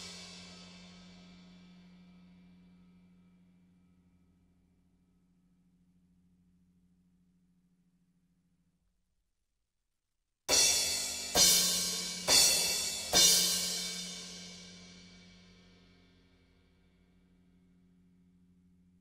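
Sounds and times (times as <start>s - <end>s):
crash cymbals with drums: 0.0s - 2.5s, 10.5s - 15.8s.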